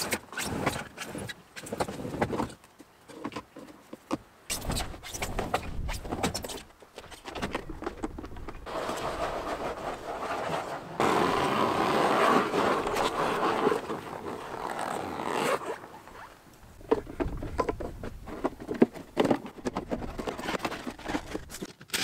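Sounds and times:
rubber scraping on rubber: 4.5 - 21.7.

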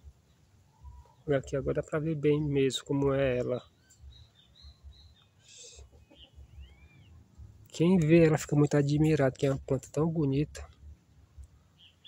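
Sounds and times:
outdoor ambience: 0.0 - 12.0
high bird chirps: 3.4 - 7.4.

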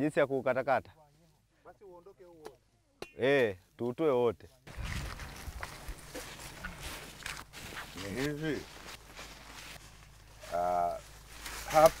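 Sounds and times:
dry brush crackling: 4.6 - 12.0.

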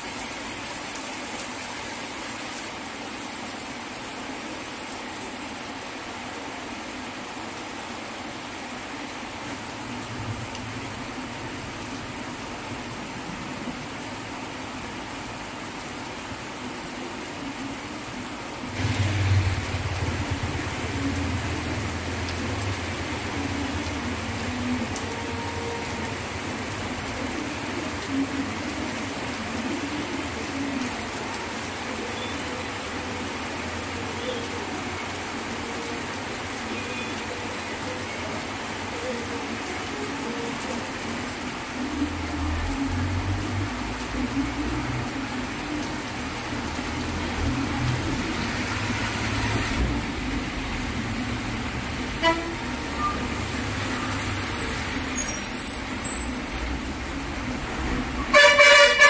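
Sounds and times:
heavy rain on a street: 0.0 - 59.0
bus engine rumbling: 46.8 - 59.0
vehicle horn toot: 52.2 - 53.3, 58.3 - 59.0.

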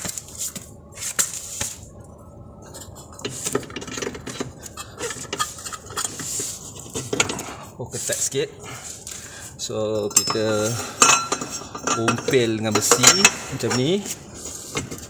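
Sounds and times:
metallic clinks and knocks: 10.0 - 14.0.

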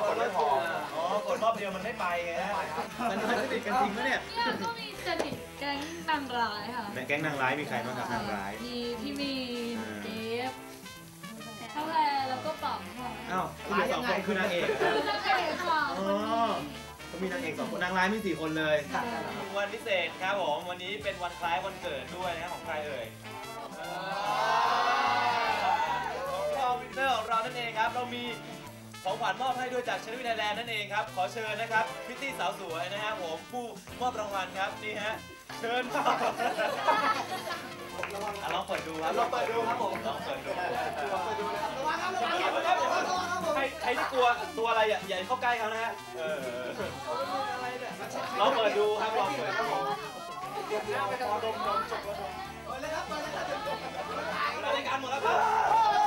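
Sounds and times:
background music with bass line: 0.0 - 56.0
group of people cheering: 23.5 - 26.9, 53.2 - 56.0
people talking over one another: 35.6 - 56.0.

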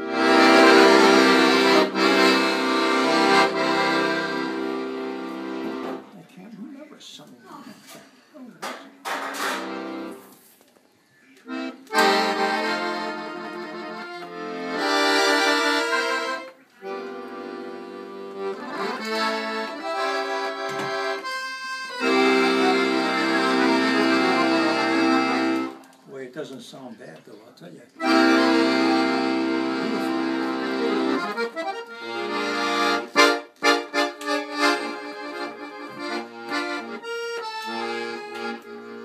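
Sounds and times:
piano accordion playing chords: 0.0 - 6.1, 9.4 - 10.4, 11.5 - 25.8, 28.0 - 39.0.

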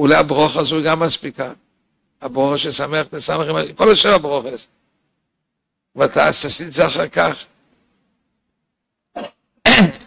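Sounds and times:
man sneezing: 9.1 - 10.0.

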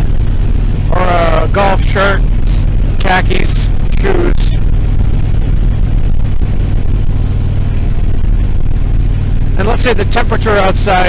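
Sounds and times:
motorcycle engine running steadily: 0.0 - 11.0
wind and road noise: 0.0 - 11.0.

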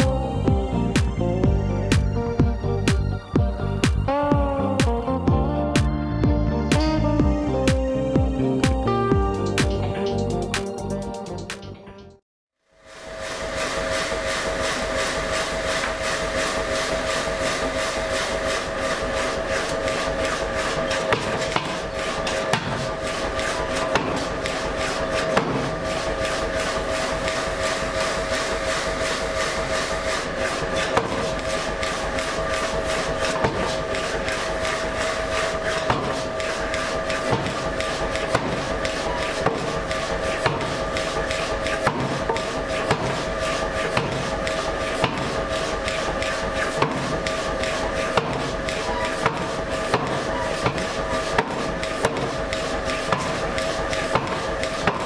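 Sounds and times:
machine hum: 12.7 - 55.0.

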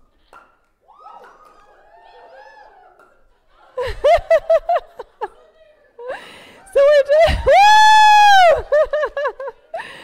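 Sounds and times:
woman whooping into microphone: 6.9 - 8.8.

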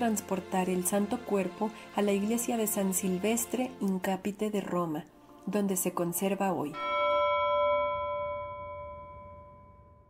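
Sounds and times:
ringing bell chime: 6.8 - 10.0.

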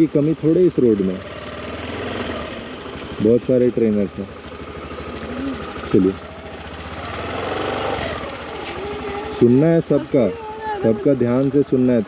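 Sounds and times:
scooter engine speeding up: 0.0 - 12.0.

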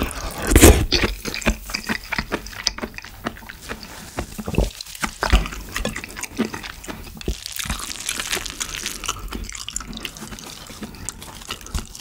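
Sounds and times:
squelchy mouth clicks and smacks: 0.0 - 10.4
wet chewing: 0.0 - 12.0.

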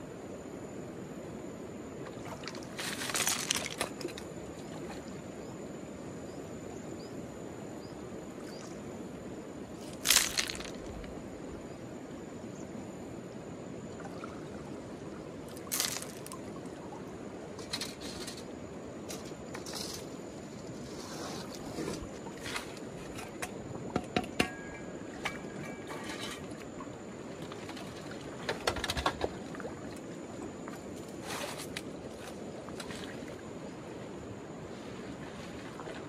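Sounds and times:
river water over stones: 1.9 - 5.4, 8.3 - 12.2, 13.4 - 36.0
rocks clacking: 9.8 - 11.0
water splashes: 15.5 - 17.1.

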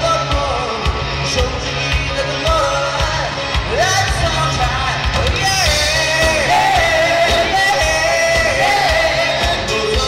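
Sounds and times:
lead singer singing: 0.0 - 10.0
live pop-rock band: 0.0 - 10.0.

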